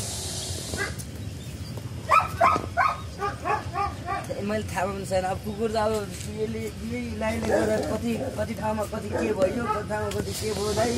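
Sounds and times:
dog yipping: 0:00.8 - 0:01.0, 0:02.1 - 0:04.4, 0:09.0 - 0:09.9.

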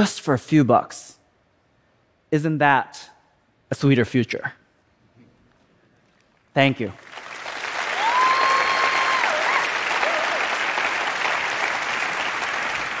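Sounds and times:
audience applause: 0:07.0 - 0:13.0
person cheering high: 0:07.9 - 0:10.7.

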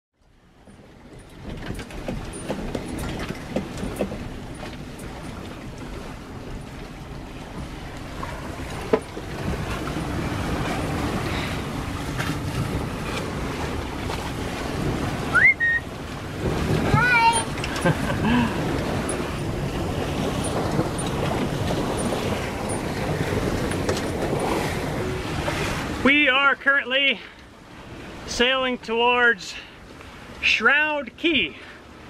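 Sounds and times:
wind and waves rushing: 0:00.2 - 0:32.0
wind buffeting microphone: 0:00.7 - 0:26.2.

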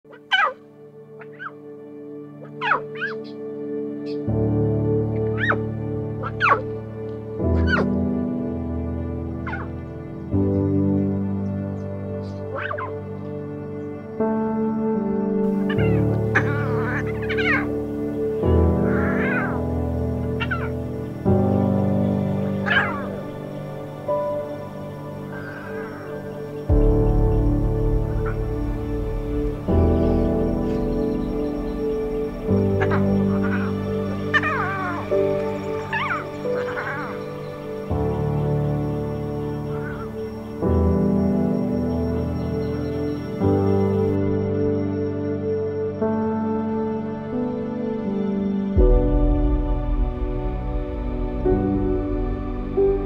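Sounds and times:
warbling animal calls: 0:00.1 - 0:00.6, 0:01.2 - 0:01.6, 0:02.4 - 0:03.4, 0:05.3 - 0:06.7, 0:07.5 - 0:08.0, 0:09.4 - 0:09.8, 0:12.4 - 0:13.0, 0:15.5 - 0:26.7, 0:28.0 - 0:29.2, 0:29.9 - 0:38.2, 0:38.9 - 0:40.6
calm background music drone: 0:00.1 - 0:53.0.

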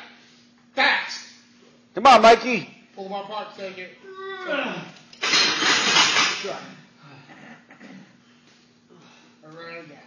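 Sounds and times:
man grunting: 0:04.2 - 0:04.9.

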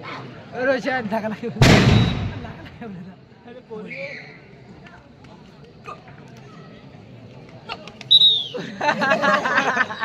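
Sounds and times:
loud bang: 0:01.6 - 0:02.8.

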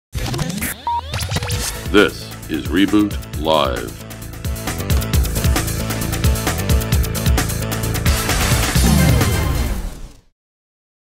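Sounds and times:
electronic intro music: 0:00.2 - 0:10.2.

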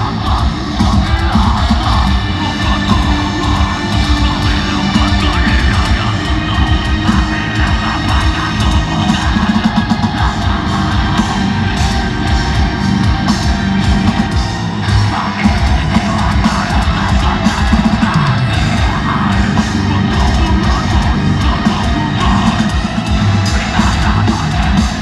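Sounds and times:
distorted guitars and bass: 0:00.0 - 0:25.0
fast dense drumming: 0:00.0 - 0:25.0
harsh screamed vocals: 0:00.0 - 0:25.0.

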